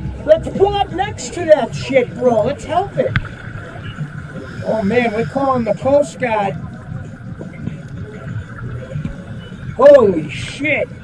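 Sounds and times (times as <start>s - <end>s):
small boat engine rumble: 0.0s - 11.0s
water noise: 0.1s - 11.0s.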